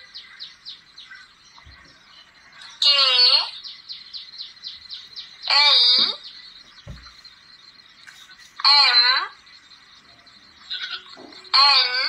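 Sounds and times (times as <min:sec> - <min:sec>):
small bird chirping: 0:00.0 - 0:12.0.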